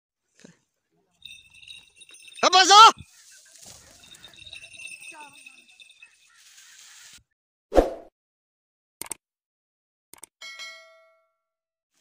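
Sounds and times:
high ringing bell: 1.1 - 7.2.

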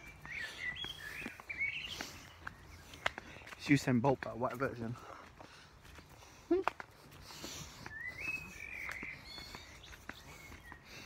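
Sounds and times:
faint footsteps on a path: 0.0 - 11.0.

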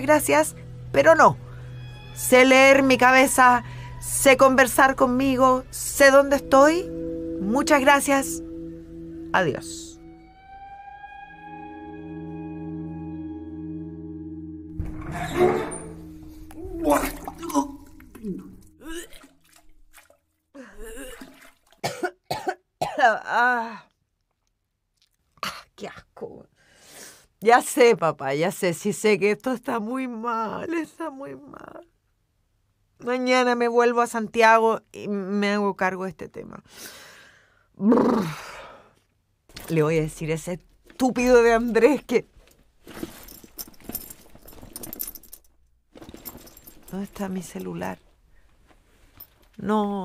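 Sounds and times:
woman's voice: 0.0 - 1.4, 2.2 - 8.5, 9.3 - 10.0, 22.9 - 23.9, 25.4 - 26.5, 27.4 - 31.9, 33.0 - 36.7, 37.8 - 38.6, 39.6 - 42.3, 46.9 - 48.0, 49.6 - 50.0
woman making strained sound: 16.6 - 19.2, 20.6 - 21.2
woman coughing: 20.6 - 23.2
keys jangling: 42.9 - 47.8.

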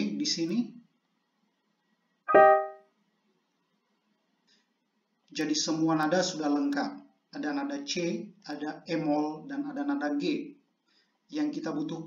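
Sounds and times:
single piano note: 2.3 - 2.8.

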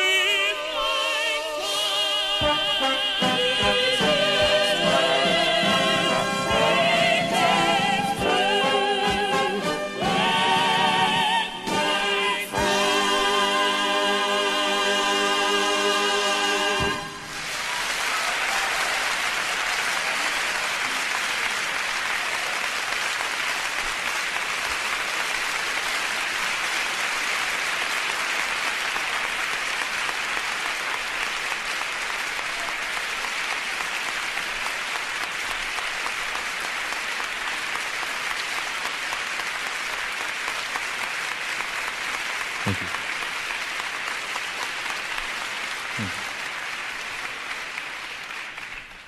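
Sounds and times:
music: 0.0 - 17.3
audience applauding: 16.6 - 49.0.

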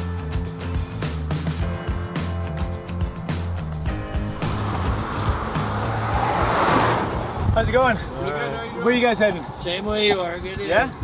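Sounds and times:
background music with steady beat: 0.0 - 11.0
car tyres on gravel: 3.6 - 10.4.

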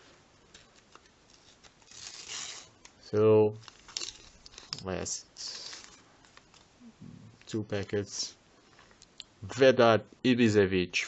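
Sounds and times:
sticker packet clicks and rustles: 3.6 - 6.7.

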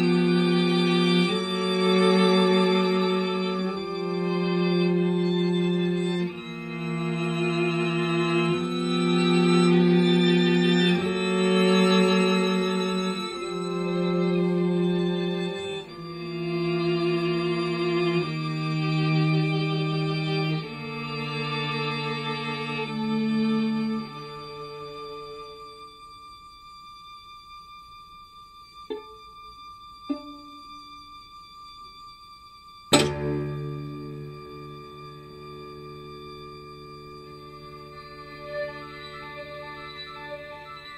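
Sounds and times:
string quartet bowed chords: 0.0 - 40.9
pizzicato plucks: 28.9 - 29.3, 30.1 - 30.7, 32.9 - 34.3.

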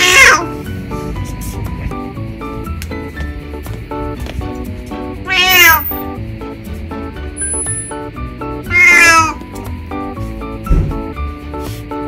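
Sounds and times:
cat meowing: 0.0 - 0.6, 5.2 - 6.0, 8.6 - 9.4
background music: 0.0 - 12.0
short low thump: 10.6 - 11.2.

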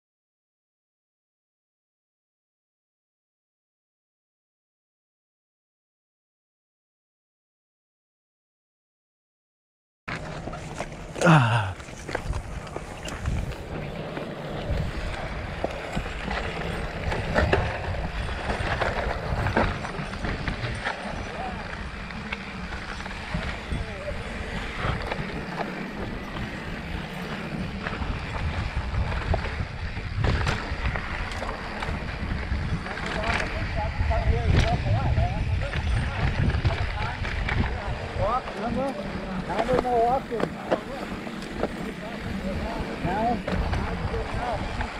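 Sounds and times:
bike knocking and rattling: 10.1 - 44.9
bike tyres rolling over dirt: 10.1 - 44.9
wind on microphone: 12.0 - 21.9, 22.8 - 39.8, 41.5 - 44.9.

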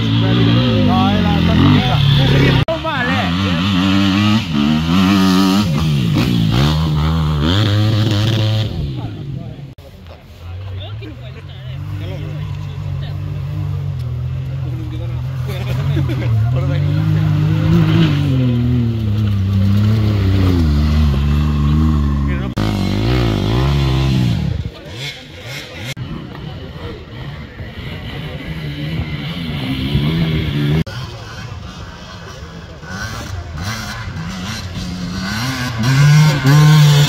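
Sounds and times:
off-road vehicle engine revving: 0.0 - 9.8, 10.8 - 37.0.

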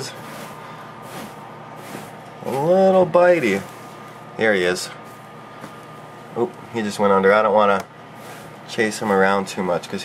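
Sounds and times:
rustling of dry bedding: 0.0 - 6.2, 8.1 - 10.0.

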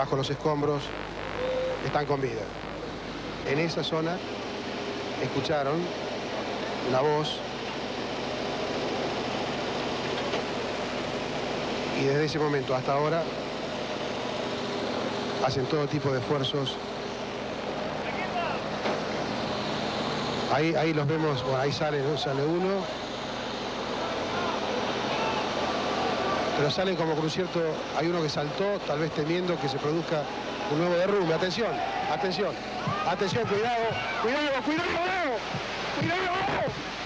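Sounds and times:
steady background noise: 0.0 - 37.0
man shouting warnings: 18.0 - 18.7, 23.9 - 27.8, 28.4 - 35.4, 36.0 - 36.8.

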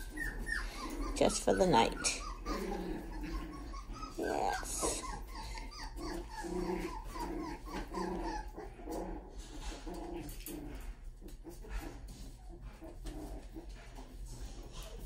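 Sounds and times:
puppies growling and whining: 0.0 - 15.0.

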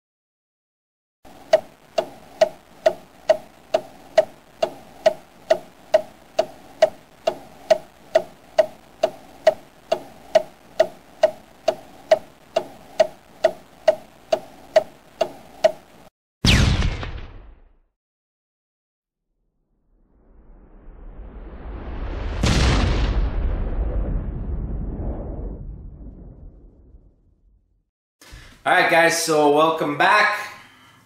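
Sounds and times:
clock ticking: 1.3 - 16.1
loud hit: 16.4 - 17.6, 22.2 - 25.0.

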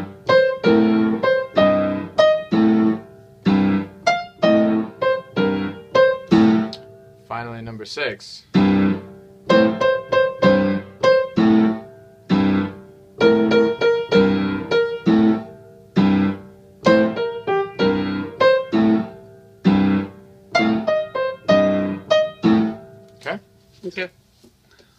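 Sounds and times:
piano playing blues chords: 0.0 - 7.6, 8.5 - 23.5.

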